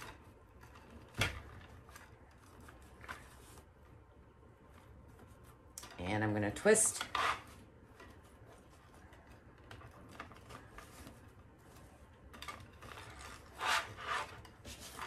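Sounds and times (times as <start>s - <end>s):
fabric ribbon rustling: 0.0s - 15.0s
ribbon scraping: 12.7s - 15.0s.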